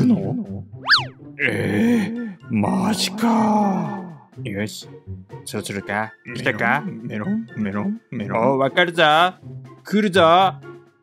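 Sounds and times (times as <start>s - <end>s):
background music with bouncy bass: 0.0s - 3.2s, 3.8s - 11.0s
cartoon whistle slide: 0.8s - 1.2s.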